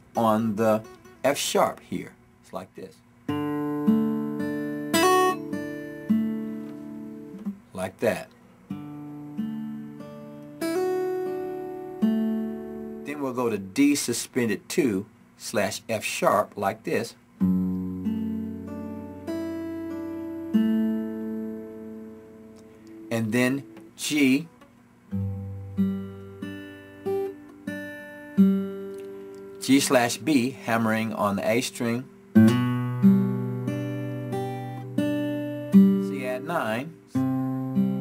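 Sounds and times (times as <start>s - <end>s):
fingerstyle guitar chord: 0.0s - 1.8s, 3.2s - 14.0s, 17.4s - 38.0s
guitar strum: 0.1s - 1.3s, 3.3s - 7.6s, 8.7s - 13.6s, 17.4s - 38.0s.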